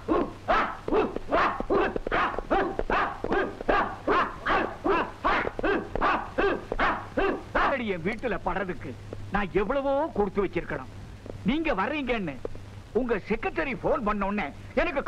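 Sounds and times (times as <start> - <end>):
group shouting in unison: 0.0 - 7.8.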